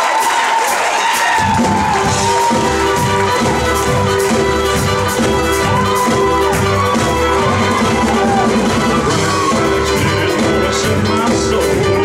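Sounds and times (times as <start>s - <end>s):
steady drum beat: 0.0s - 12.0s
bass line: 1.4s - 12.0s.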